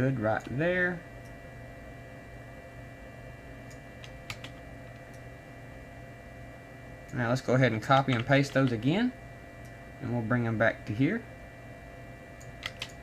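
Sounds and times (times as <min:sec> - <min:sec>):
computer low hum: 0:00.0 - 0:13.0
keyboard clicks: 0:03.7 - 0:05.2, 0:08.0 - 0:08.8, 0:12.4 - 0:13.0.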